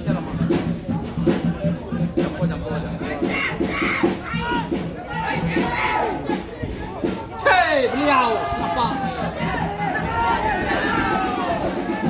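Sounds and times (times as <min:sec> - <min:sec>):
people shouting: 0:03.2 - 0:12.0.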